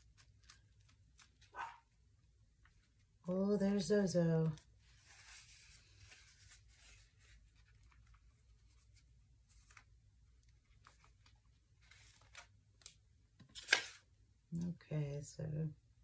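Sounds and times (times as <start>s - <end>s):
paper rustling and rubbing: 4.5s - 9.9s.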